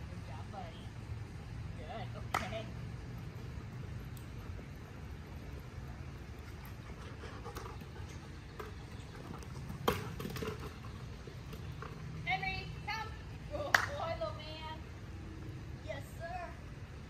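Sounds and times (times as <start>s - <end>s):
plastic ball bouncing on mulch: 8.5s - 12.2s.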